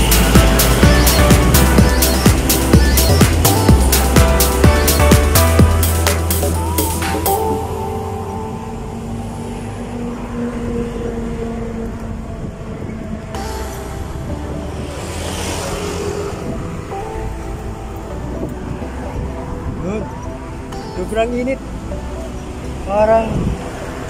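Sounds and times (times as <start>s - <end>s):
background music: 0.0s - 11.4s, 12.5s - 24.0s
rush of noise: 0.0s - 20.8s
road traffic: 0.0s - 24.0s
wind rumble: 0.0s - 24.0s.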